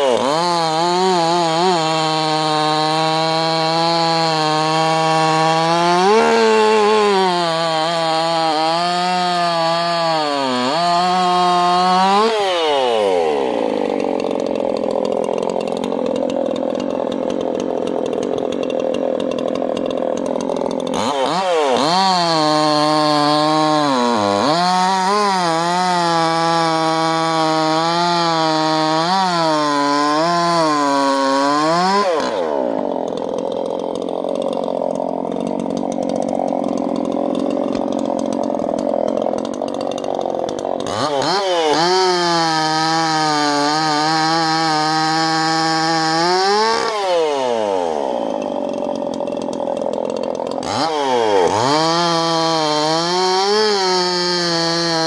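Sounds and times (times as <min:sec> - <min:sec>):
chainsaw cutting logs: 0:00.0 - 0:55.0.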